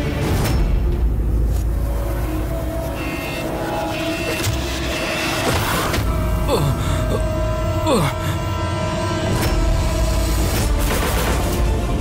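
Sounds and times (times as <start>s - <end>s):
dramatic orchestral score: 0.0s - 12.0s.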